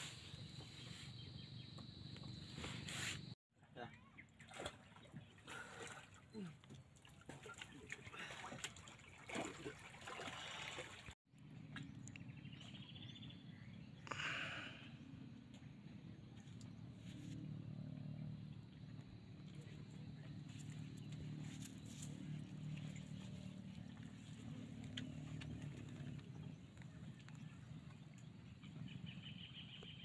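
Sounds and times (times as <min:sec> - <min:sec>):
boat motor humming: 0:15.4 - 0:30.0.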